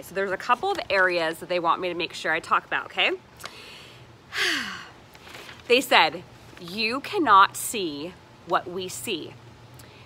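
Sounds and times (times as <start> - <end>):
woman sighing breath: 3.5 - 5.0.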